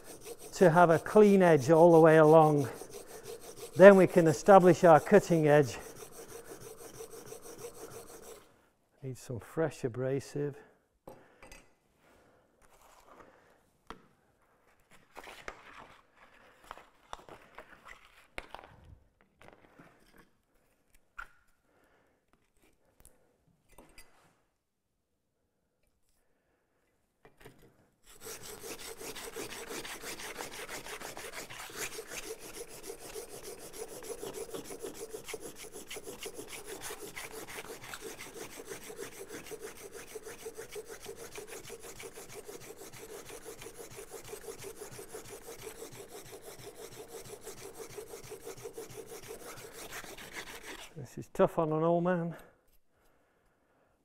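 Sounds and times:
plane iron rasping on sandpaper: 0.0 - 8.5, 28.1 - 51.0.

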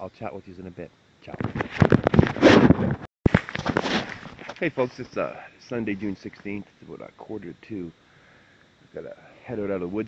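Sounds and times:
camera handling rustling: 3.3 - 4.6.

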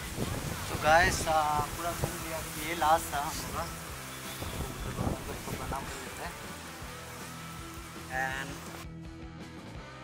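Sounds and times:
quiet music: 0.9 - 10.0.

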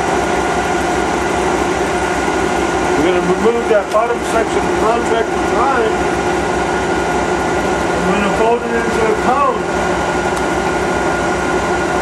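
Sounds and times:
alternator mechanical drone: 0.0 - 12.0.

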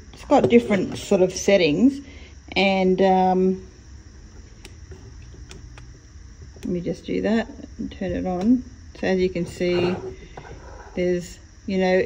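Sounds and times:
low steady rumble: 0.0 - 12.0.

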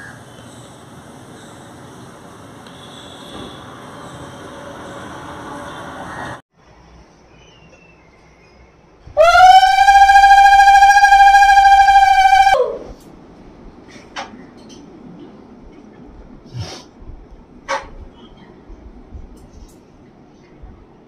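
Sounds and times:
conch shell blown: 9.2 - 12.9.

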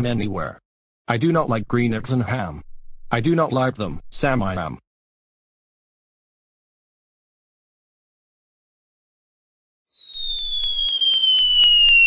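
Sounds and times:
cartoon falling whistle: 9.9 - 12.0.

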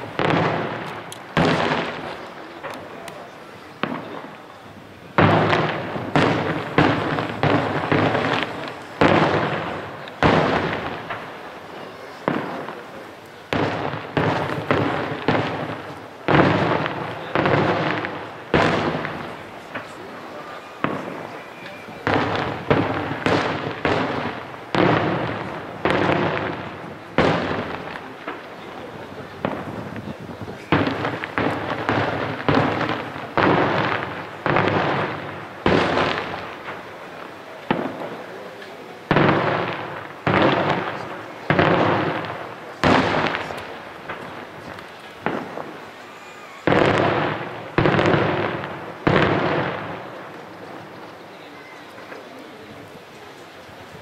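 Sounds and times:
fireworks bursting with echo: 0.0 - 54.0.

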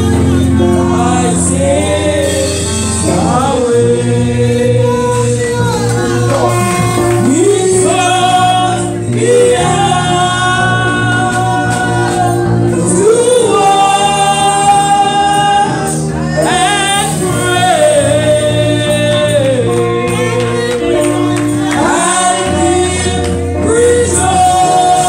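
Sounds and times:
women singing gospel: 0.0 - 25.0.

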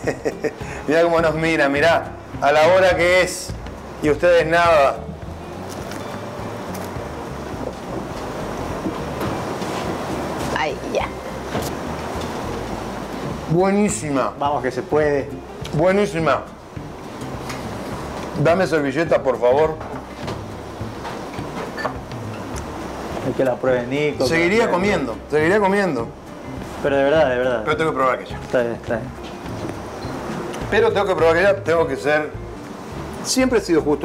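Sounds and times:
steady rushing noise: 1.8 - 15.3.

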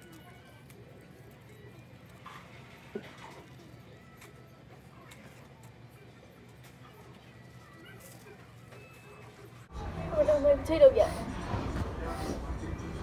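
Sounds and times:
distant voices: 0.0 - 13.0.

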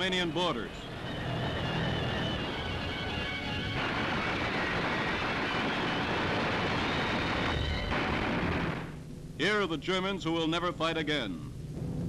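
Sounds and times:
dense roar of battle noise: 1.0 - 8.9.

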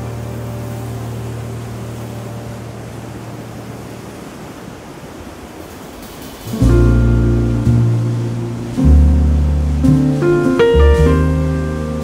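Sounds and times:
held low music notes: 0.0 - 4.3, 6.4 - 12.0
waves breaking on beach: 0.0 - 12.0.

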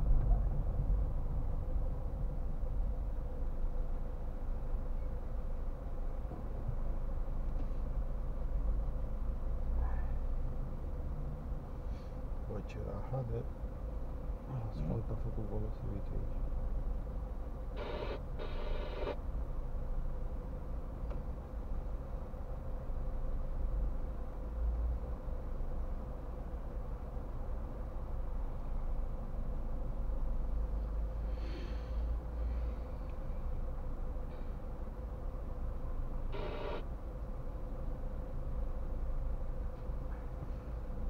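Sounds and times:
faint steady hum: 0.0 - 41.0
buzzing car horn beeps: 17.8 - 19.2, 36.3 - 36.8
car engine idling: 17.8 - 19.2, 36.4 - 36.8
brief pitched tone: 36.4 - 36.8.

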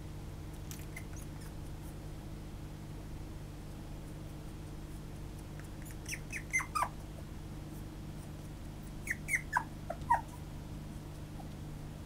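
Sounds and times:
puppy crying: 5.8 - 7.1, 8.8 - 10.5.

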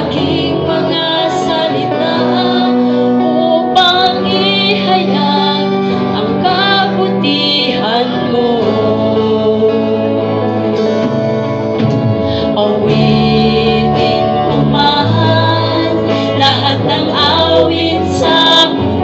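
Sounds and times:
woman singing into microphone: 0.0 - 10.8, 12.3 - 19.0
electric bass: 0.0 - 19.0
electric guitar: 0.0 - 19.0.

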